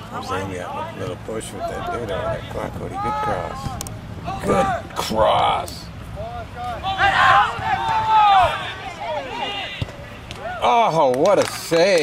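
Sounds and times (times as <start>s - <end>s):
people shouting: 1.6s - 5.0s, 6.2s - 10.8s.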